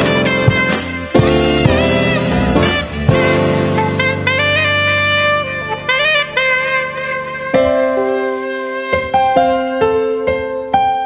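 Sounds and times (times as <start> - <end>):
sustained accompaniment chord: 0.0 - 9.2
alto saxophone slow melody: 0.0 - 11.0.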